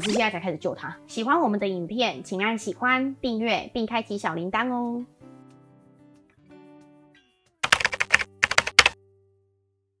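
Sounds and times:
keyboard keystrokes clicking: 7.6s - 9.0s.

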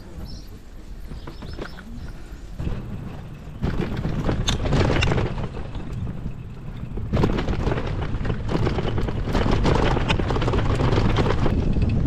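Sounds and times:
wind rumble on microphone: 0.0s - 12.0s
bicycle clicks and knocks: 1.0s - 12.0s.

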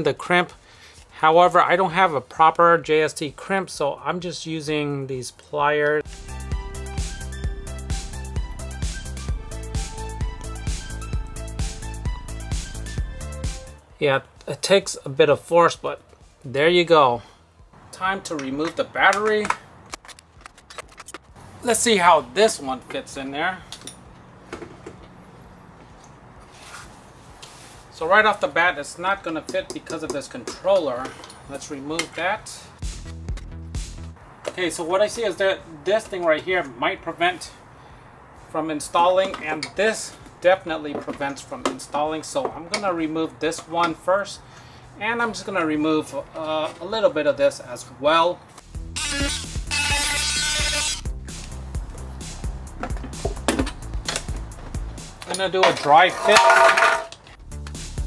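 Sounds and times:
soft scuff: 25.8s - 27.9s
rotary tool grinding plastic: 49.0s - 51.0s
battery pack knocks and scrapes: 52.8s - 54.4s.

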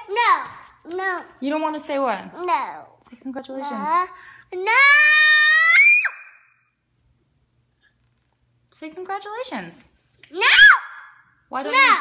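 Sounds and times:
girl shouting: 10.3s - 12.0s.

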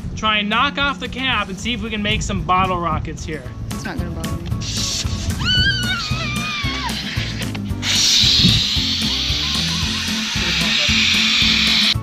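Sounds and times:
background music: 2.4s - 12.0s
cola foam hissing from bottle: 4.6s - 12.0s.

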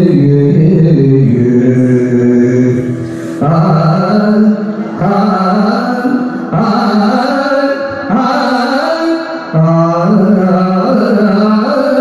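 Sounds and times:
person singing long notes: 0.0s - 12.0s.

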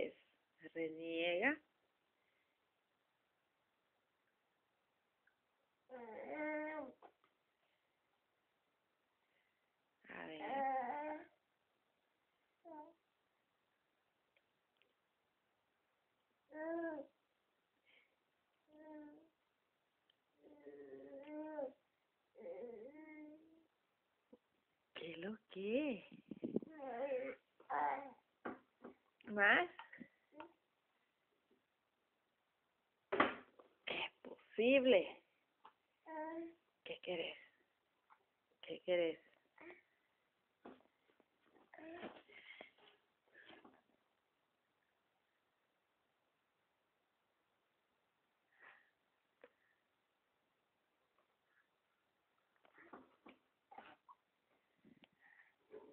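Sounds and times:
faint background hiss: 0.0s - 55.9s
infant vocal sounds: 5.9s - 7.1s, 18.7s - 19.3s, 20.4s - 21.8s, 22.4s - 23.7s, 26.6s - 28.2s.

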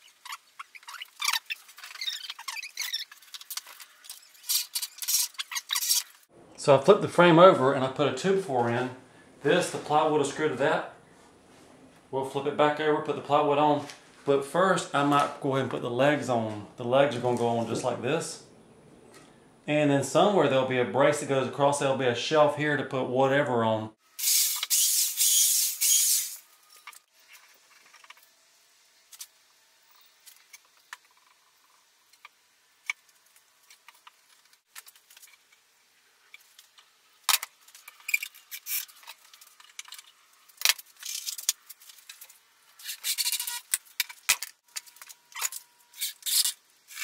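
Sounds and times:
power drill into wood: 24.2s - 26.4s.

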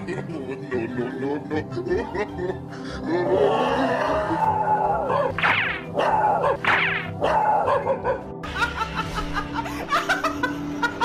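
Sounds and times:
background music: 0.0s - 11.0s
dog barking and yelping: 5.1s - 8.3s.

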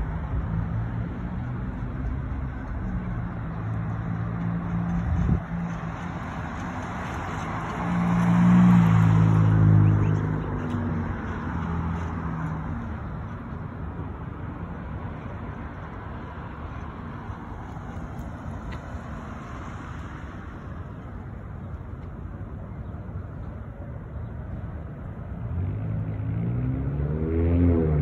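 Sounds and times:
vehicle passing by: 0.0s - 12.9s, 25.3s - 28.0s
traffic noise: 0.0s - 28.0s.

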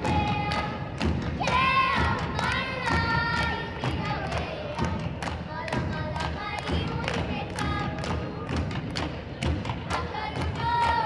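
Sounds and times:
hand drum beat: 0.0s - 11.0s.

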